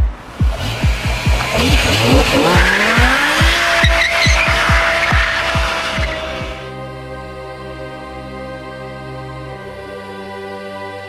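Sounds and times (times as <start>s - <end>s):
car engine revving: 0.0s - 6.7s
music with fast kick-drum beat: 0.0s - 6.7s
tyres squealing: 0.6s - 6.6s.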